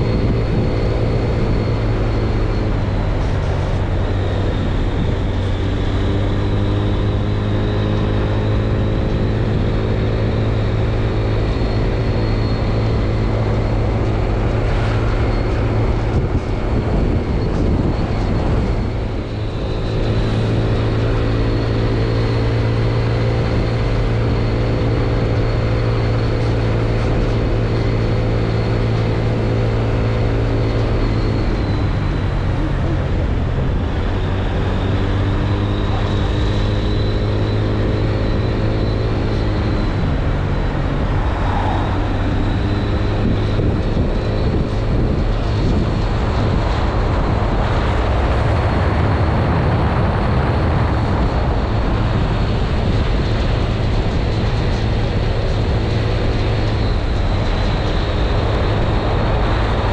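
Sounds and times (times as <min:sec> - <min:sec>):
vehicle engine and road noise: 0:00.0 - 0:59.9.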